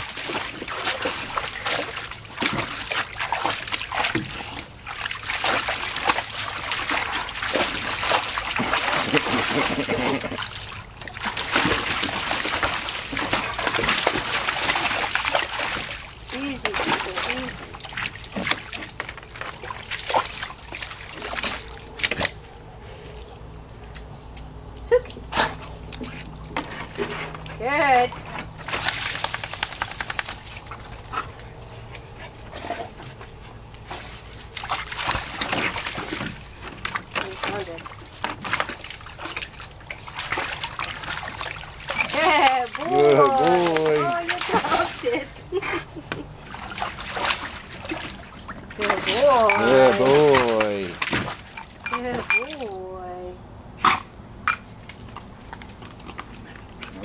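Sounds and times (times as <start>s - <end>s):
dogs splashing in water: 0.0s - 57.0s.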